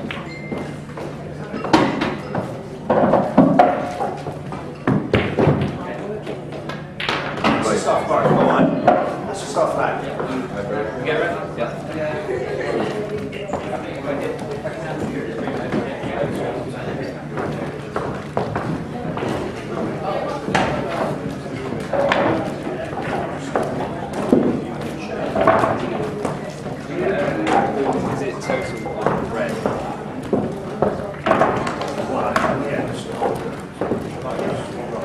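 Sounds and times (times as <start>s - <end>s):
pool balls clacking: 0.0s - 9.3s, 13.0s - 35.0s
indistinct talk: 0.0s - 35.0s.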